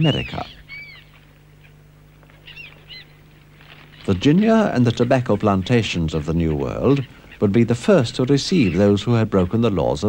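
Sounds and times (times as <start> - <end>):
bird chirps: 0.0 - 5.3
steady low hum: 0.0 - 10.0.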